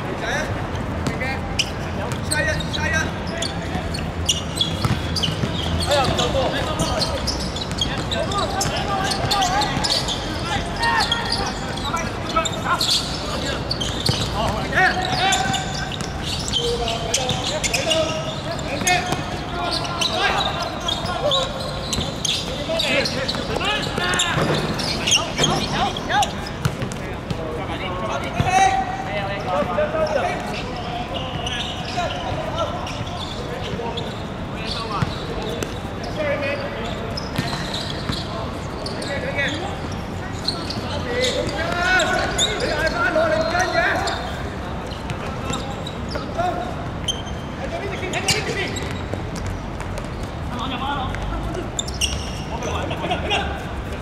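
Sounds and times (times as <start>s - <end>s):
footballers shouting: 4.6s - 33.8s.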